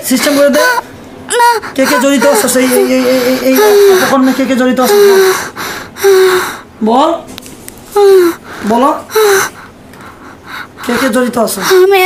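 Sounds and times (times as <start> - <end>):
woman's breathy cries: 0.4 - 6.7
man's voice: 1.8 - 5.0.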